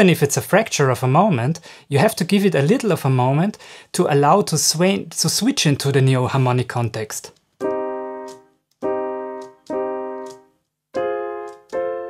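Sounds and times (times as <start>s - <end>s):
piano chords ringing: 7.6s - 12.0s.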